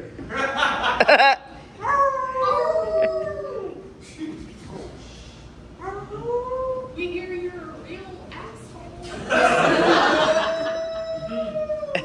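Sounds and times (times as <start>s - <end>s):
person howling: 1.8s - 3.9s, 10.4s - 12.0s.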